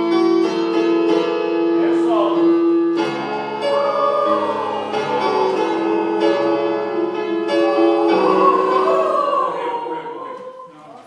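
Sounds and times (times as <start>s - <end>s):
keyboard chords: 0.0s - 10.7s
choir singing held notes: 3.0s - 11.0s.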